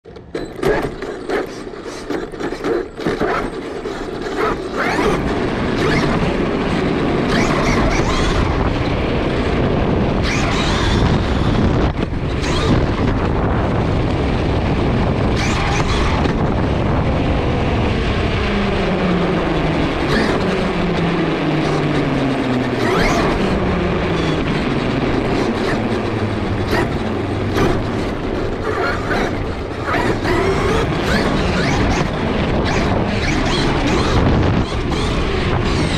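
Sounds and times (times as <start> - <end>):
tyres rumbling on cobblestones: 0.0 - 35.9
electric motor whine: 0.6 - 35.9.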